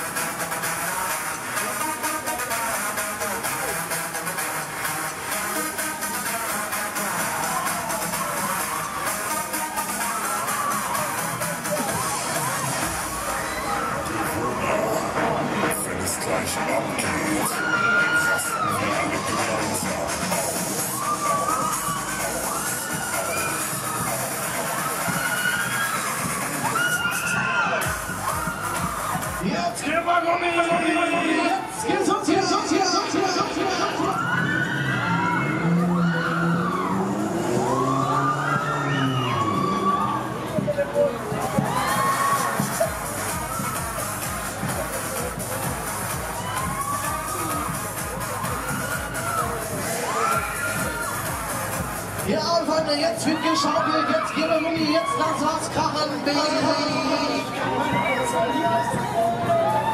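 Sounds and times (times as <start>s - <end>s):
loud music from sound system: 0.0s - 59.9s
riders shouting: 16.9s - 43.8s
deep bass: 27.8s - 29.6s, 33.4s - 52.9s
siren-like wailing over loudspeakers: 33.7s - 40.5s.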